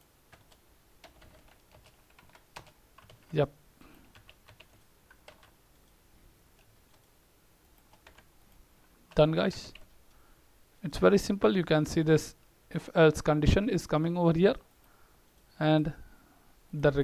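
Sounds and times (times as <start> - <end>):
computer keyboard keystrokes: 0.3 - 3.3, 4.1 - 5.6, 7.7 - 8.3.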